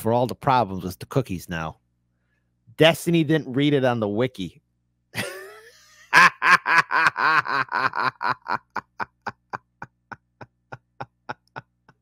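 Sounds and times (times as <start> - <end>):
man laughing: 5.2 - 12.0.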